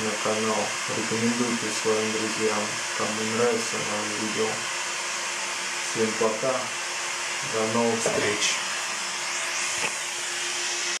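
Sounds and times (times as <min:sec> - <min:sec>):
faint hum: 0:00.0 - 0:10.9
rushing hiss: 0:00.0 - 0:11.0.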